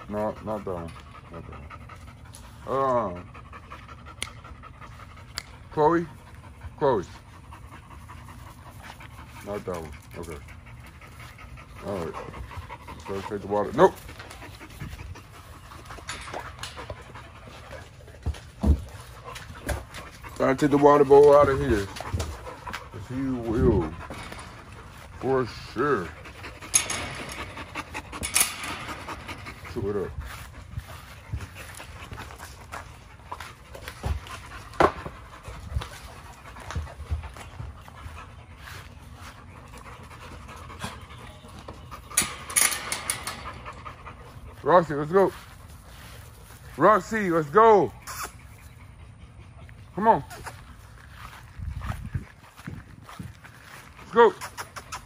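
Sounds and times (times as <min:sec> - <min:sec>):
dog panting: 0:00.0 - 0:55.0.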